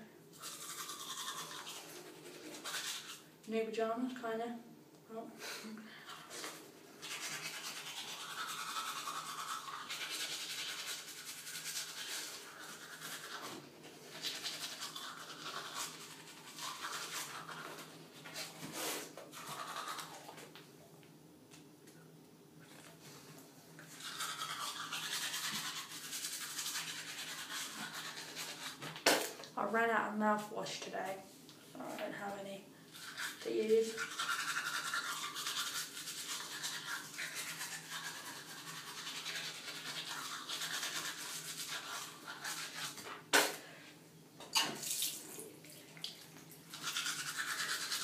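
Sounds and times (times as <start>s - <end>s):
toothbrush scrubbing teeth: 0.3s - 3.3s, 6.0s - 20.5s, 23.7s - 29.0s, 32.9s - 43.3s, 45.3s - 48.0s.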